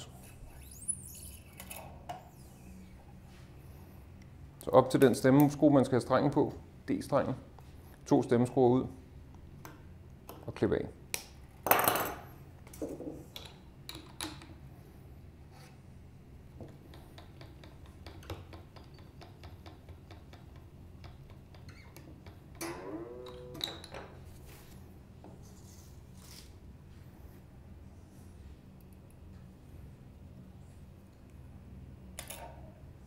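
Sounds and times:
tuner clicking: 22.6 - 23.9.

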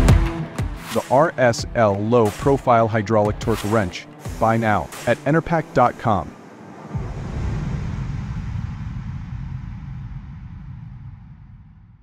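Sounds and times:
deep rumbling sound effect: 6.8 - 12.0.

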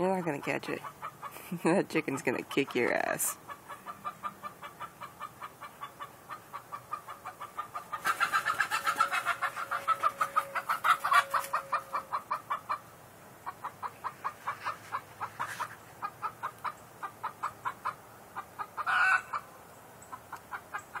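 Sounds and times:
chicken clucking: 2.2 - 19.5, 20.1 - 21.0
chicken squawk: 3.5 - 12.8, 13.4 - 19.5.

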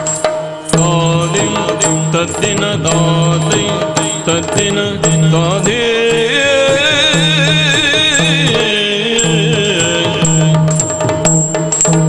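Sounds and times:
drum strokes: 0.0 - 12.0
person singing: 0.7 - 10.8.

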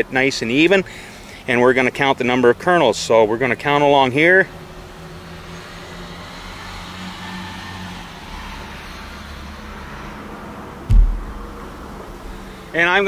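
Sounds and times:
short low thump: 10.9 - 11.6
low background rumble: 10.9 - 11.7.

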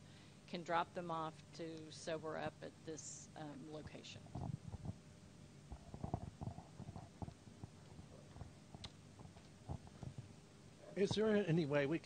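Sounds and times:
microphone handling bumps: 3.8 - 5.0, 5.7 - 11.4.

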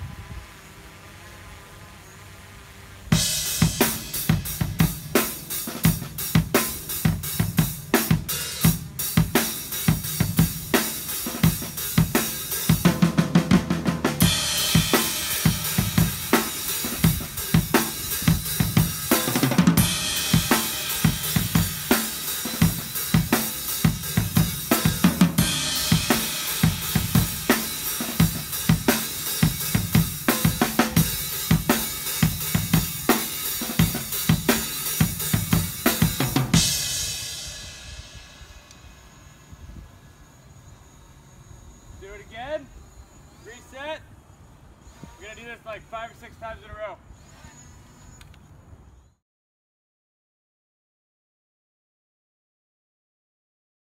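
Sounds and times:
crash cymbals: 3.1 - 12.9, 14.1 - 41.8
drum kit groove: 3.1 - 39.0.

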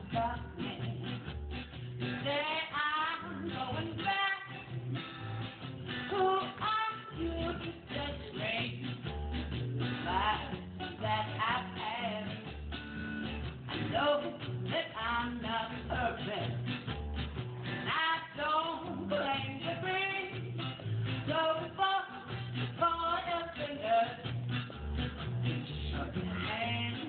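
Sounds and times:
woman singing: 0.0 - 1.3, 2.0 - 5.0, 6.0 - 9.1, 10.0 - 12.5, 13.7 - 16.7, 17.6 - 27.0
acoustic guitar strumming: 0.0 - 27.0
plucked double bass: 0.0 - 27.0.

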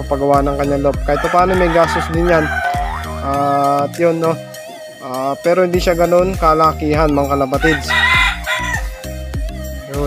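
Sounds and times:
background music with steady beat: 0.0 - 10.0
rooster crowing: 1.2 - 3.5, 7.6 - 9.0.

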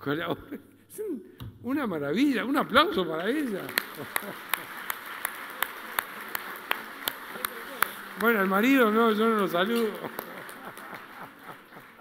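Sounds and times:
fainter room clapping: 3.1 - 12.0
close hand claps: 3.2 - 12.0.

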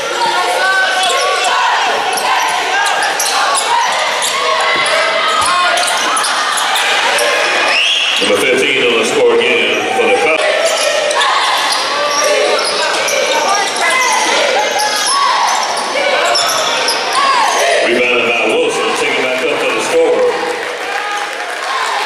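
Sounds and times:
voices calling out: 0.0 - 22.0.

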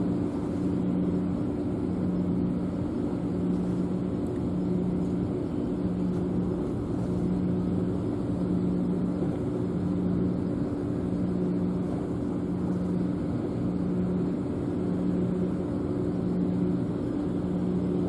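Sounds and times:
distant machinery drone: 0.0 - 18.0.

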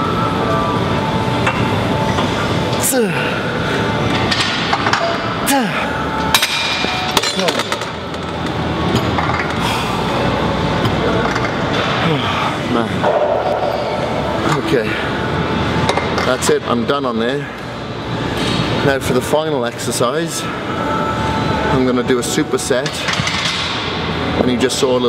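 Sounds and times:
man grunting: 2.8 - 3.5, 5.4 - 6.0
heavy breathing: 9.6 - 10.3.

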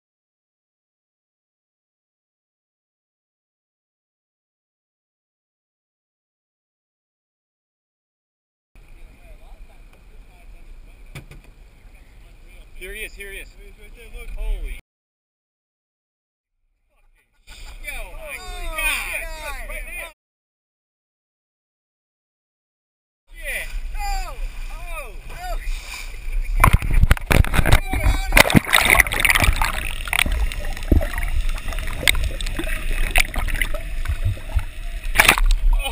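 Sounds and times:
boat engine low rumble: 8.8 - 14.8, 23.4 - 35.9
wind: 8.8 - 14.8, 16.6 - 20.2, 23.3 - 35.9
water noise: 17.5 - 20.1, 23.3 - 35.9.

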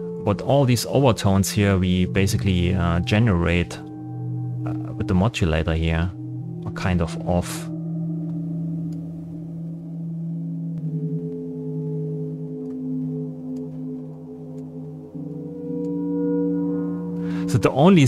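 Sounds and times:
synthesizer gong-like chord: 1.7 - 17.8.

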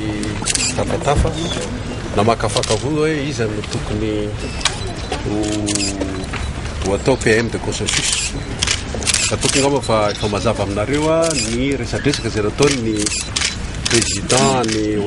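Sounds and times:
man speaking: 0.0 - 4.5, 5.2 - 8.4, 9.2 - 13.3, 13.9 - 15.0.

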